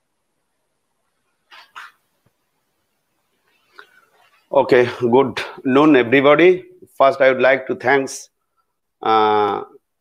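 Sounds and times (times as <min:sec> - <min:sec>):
sharp animal calls: 0:01.5 - 0:02.1.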